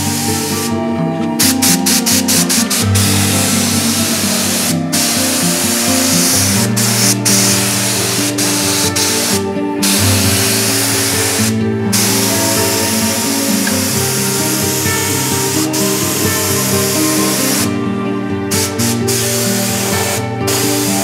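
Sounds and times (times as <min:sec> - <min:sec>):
spray gun hissing: 0:00.0 - 0:17.8, 0:18.5 - 0:21.0.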